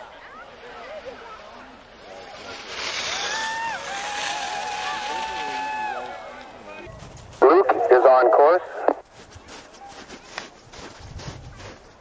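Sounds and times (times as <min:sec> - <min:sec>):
spectators yelling long shouts: 0:03.0 - 0:06.9.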